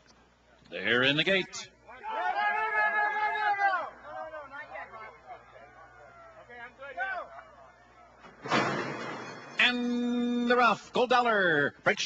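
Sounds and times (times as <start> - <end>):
starting gate banging open: 8.3 - 9.6.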